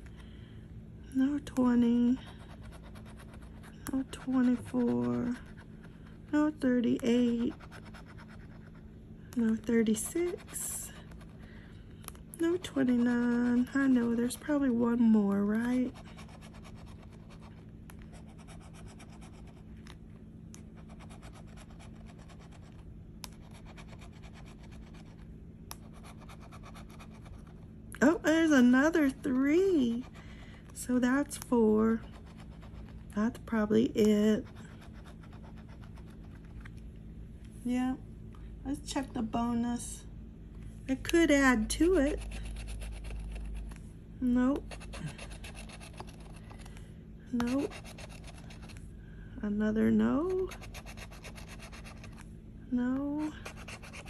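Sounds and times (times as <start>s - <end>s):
scraping scratch-off ticket: 1.4s - 5.6s, 47.4s - 48.7s
scratching lottery ticket coating: 1.4s - 8.8s, 9.4s - 11.6s, 12.4s - 19.9s, 20.6s - 27.6s, 31.0s - 36.7s, 41.1s - 46.8s, 47.4s - 48.8s, 50.2s - 52.2s, 53.1s - 54.0s.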